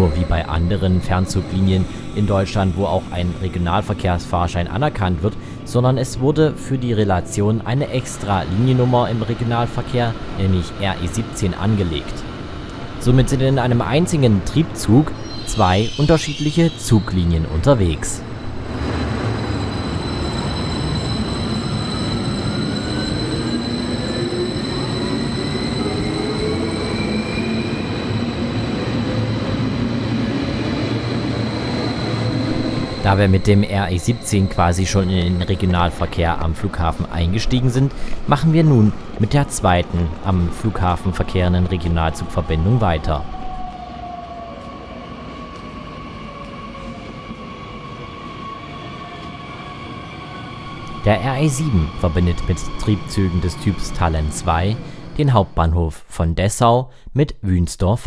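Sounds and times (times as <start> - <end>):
train wheels rumbling: 7.2 - 55.8
electric traction whine: 14.3 - 44.2.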